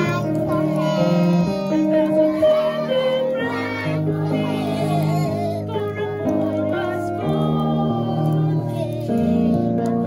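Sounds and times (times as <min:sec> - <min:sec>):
children singing: 0:00.0 - 0:10.0
instrumental accompaniment: 0:00.0 - 0:10.0.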